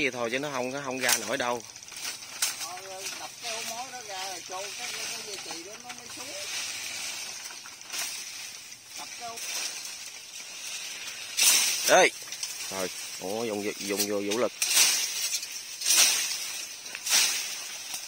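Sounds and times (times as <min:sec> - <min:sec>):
men talking quietly: 0:00.0 - 0:01.7, 0:02.4 - 0:06.7, 0:11.4 - 0:14.9
rustling of dry leaves and brush: 0:00.0 - 0:18.0
steady high hiss: 0:00.0 - 0:18.0.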